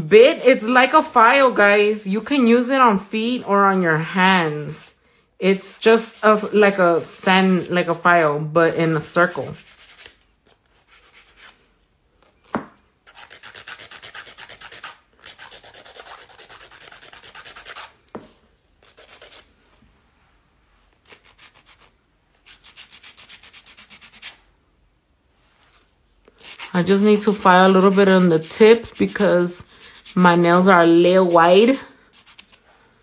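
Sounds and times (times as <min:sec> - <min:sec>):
nail file rasping: 0:13.0 - 0:18.0, 0:21.0 - 0:24.4, 0:26.3 - 0:30.6, 0:31.2 - 0:32.6.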